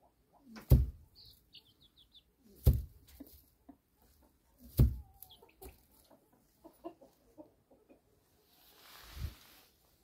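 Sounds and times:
soft clucking calls: 0.0 - 8.2
dull thump: 0.6 - 1.0, 2.6 - 3.0, 4.7 - 5.0.

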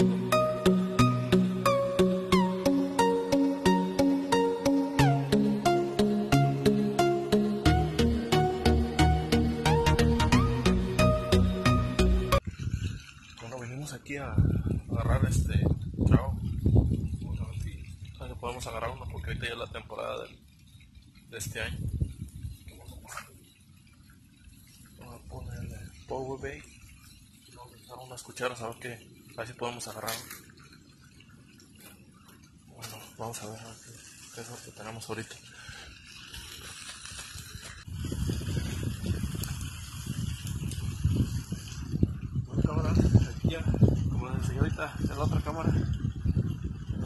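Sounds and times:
man talking: 42.5 - 45.9.

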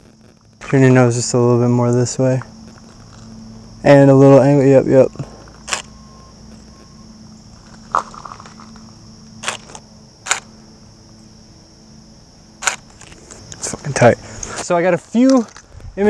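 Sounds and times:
high-pitched insect drone: 0.0 - 16.0
camera shutter clicks: 5.6 - 5.9, 9.4 - 10.5, 12.6 - 13.2.

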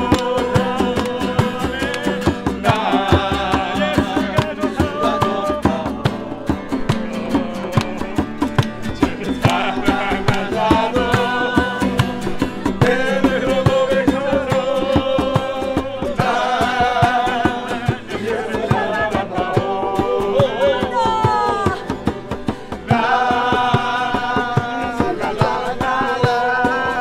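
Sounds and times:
hand clapping: 0.0 - 3.1, 6.9 - 13.0
group singing worship song: 0.0 - 27.0
strummed acoustic guitars: 0.0 - 27.0.

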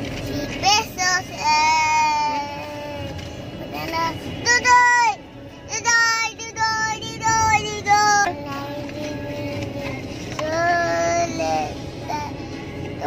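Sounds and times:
young child singing: 3.7 - 12.5.

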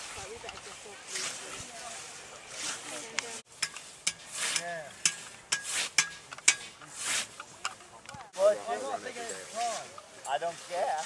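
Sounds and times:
scythe swishing through grass: 0.0 - 7.6, 8.3 - 11.0.

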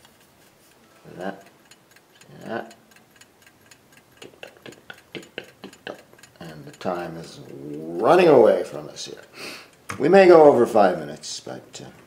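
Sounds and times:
timer ticking: 0.0 - 12.0.

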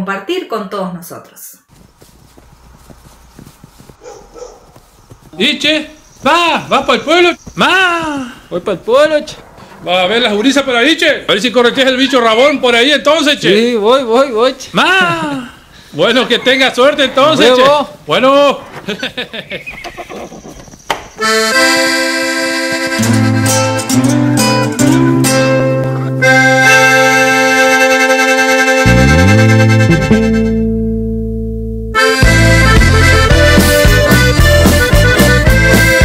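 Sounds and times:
horse hooves walking: 1.7 - 9.8, 18.6 - 22.1
horse whinnying: 19.7 - 20.7.

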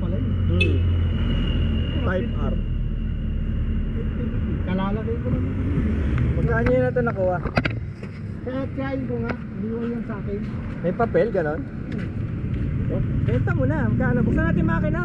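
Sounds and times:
road traffic rumble: 0.0 - 15.0
voices talking: 0.0 - 15.0.

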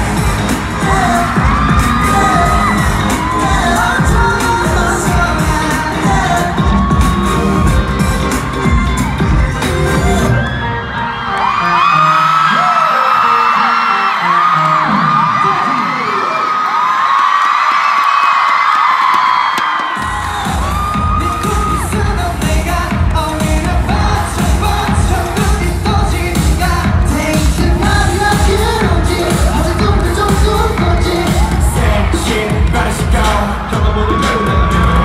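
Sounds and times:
heavy bass and drum beat: 0.0 - 10.4, 20.0 - 35.0
live pop concert music: 0.0 - 35.0.

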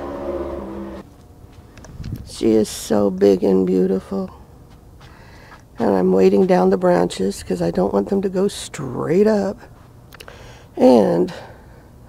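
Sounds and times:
motor hum: 0.0 - 6.6.

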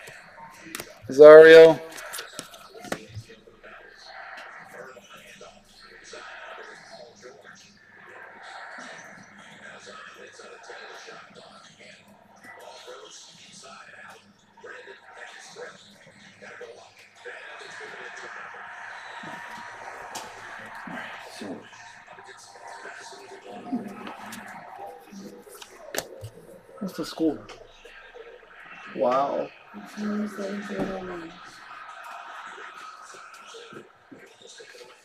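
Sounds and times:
low indistinct talking: 0.0 - 35.0
trading cards tapping and rustling: 1.9 - 3.3.

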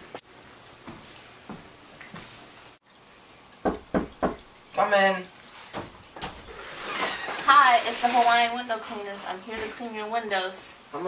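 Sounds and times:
knocks on a door: 3.6 - 4.5.

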